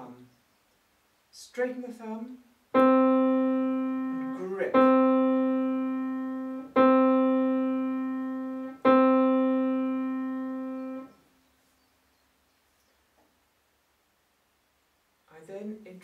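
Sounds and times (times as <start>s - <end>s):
grand piano note ringing: 2.8s - 11.1s.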